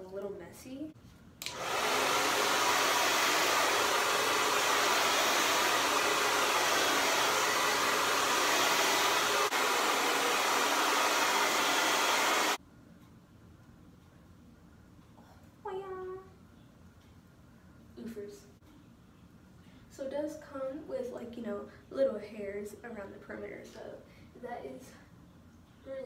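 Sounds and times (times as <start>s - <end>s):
hair dryer blowing: 1.4s - 12.6s.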